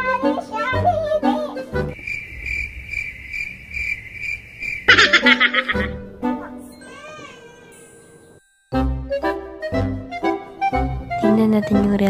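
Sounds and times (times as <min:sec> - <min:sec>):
music: 0:00.0 - 0:02.0, 0:05.0 - 0:12.0
cricket chirping: 0:01.9 - 0:06.0.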